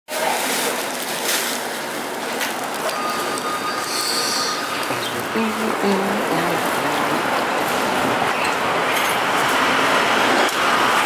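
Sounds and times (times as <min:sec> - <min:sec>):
street noise: 0:00.1 - 0:11.0
elevated train running on tracks: 0:00.2 - 0:11.0
metallic wheel squeal: 0:03.0 - 0:04.8.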